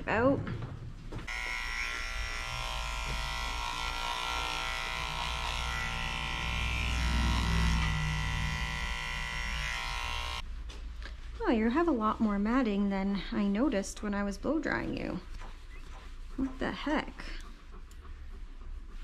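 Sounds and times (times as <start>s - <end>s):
electric clipper buzzing: 1.3s - 10.4s.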